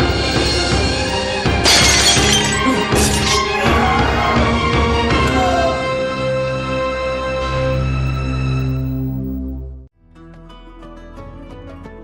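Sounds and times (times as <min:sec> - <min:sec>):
background music: 0:00.0 - 0:12.0
glass pieces tinkling: 0:01.6 - 0:03.3
drinking glasses shattering: 0:01.6 - 0:03.5.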